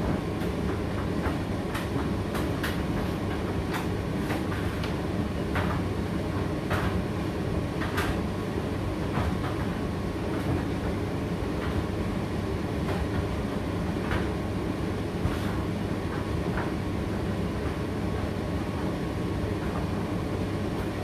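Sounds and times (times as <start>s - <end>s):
tumble dryer rumbling hum: 0.0s - 21.0s.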